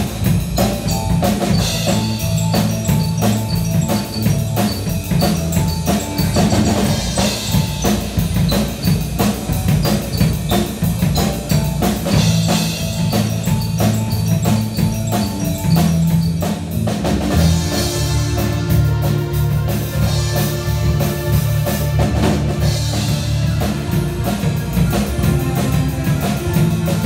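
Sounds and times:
drum kit steady beat: 0.0s - 27.0s
keyboard: 0.0s - 27.0s
live rock band playing: 0.0s - 27.0s.

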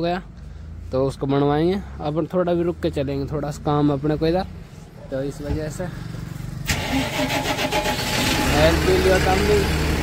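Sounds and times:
diesel engine cranking and idling: 0.0s - 10.0s.

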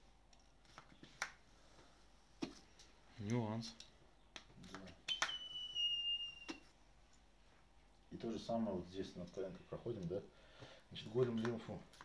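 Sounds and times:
high whistle of air through valve: 5.1s - 6.7s.

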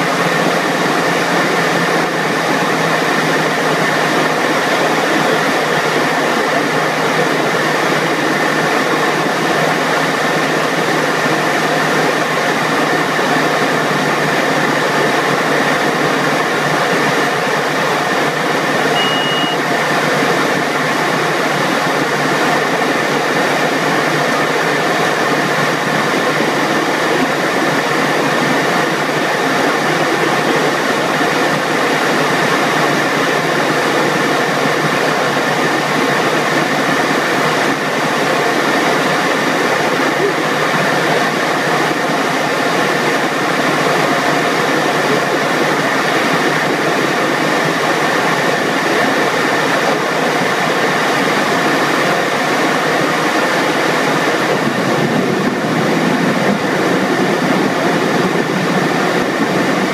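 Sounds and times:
small plane engine and propeller: 0.0s - 59.9s
short high beep: 18.8s - 19.8s.

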